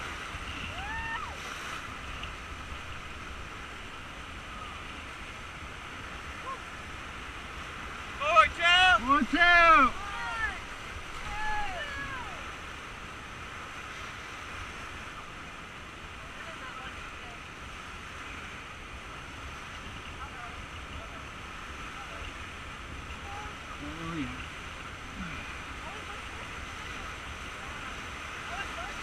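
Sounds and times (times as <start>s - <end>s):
whitewater rapids rushing: 0.0s - 29.0s
faint shouts: 0.7s - 1.4s, 8.2s - 12.5s.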